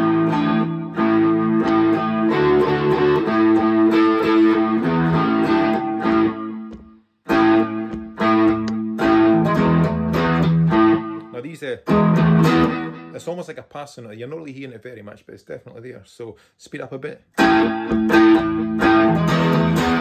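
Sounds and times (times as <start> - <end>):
electric guitar riff: 0.0 - 13.2, 17.4 - 20.0.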